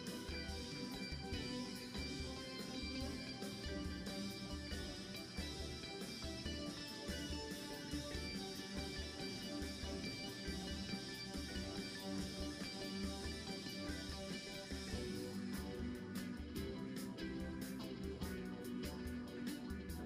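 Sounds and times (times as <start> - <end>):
drum kit beat: 0.0 - 20.0
electric guitar: 0.0 - 20.0.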